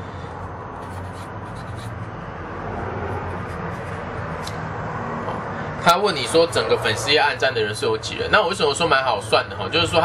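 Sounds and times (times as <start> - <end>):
marker pen writing on paper: 0.8 - 2.3, 3.0 - 4.4.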